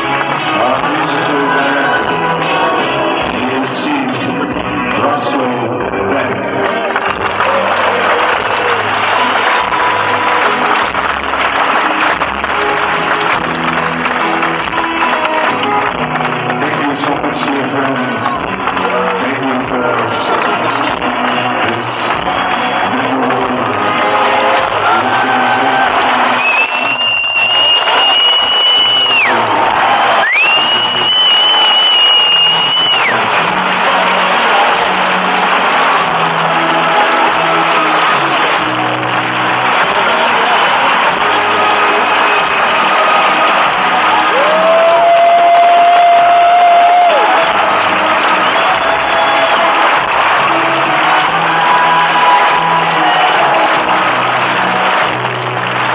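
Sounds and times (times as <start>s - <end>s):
concert band playing: 0.0s - 55.9s
crowd cheering: 0.0s - 55.9s.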